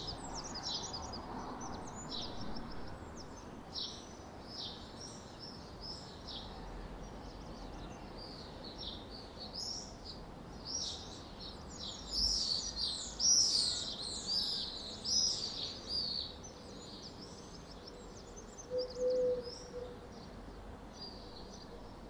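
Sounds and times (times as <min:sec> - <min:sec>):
small birds chirping and twittering: 0:00.0 - 0:22.0.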